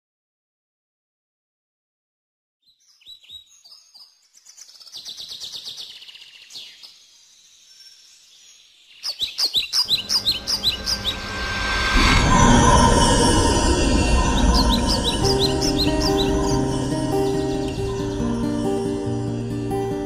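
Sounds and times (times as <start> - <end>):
songbirds chirping and trilling: 2.7 - 20.0
falling chirps: 9.1 - 20.0
wash of sound: 9.9 - 19.9.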